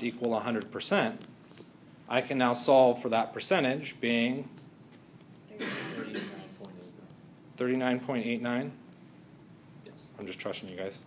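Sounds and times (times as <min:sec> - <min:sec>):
person coughing: 0:05.5 - 0:06.6.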